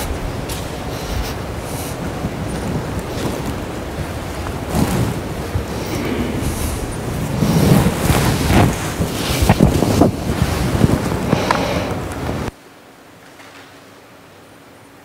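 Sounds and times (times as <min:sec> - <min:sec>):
microphone rumbling and rustling: 0:00.0 - 0:12.5.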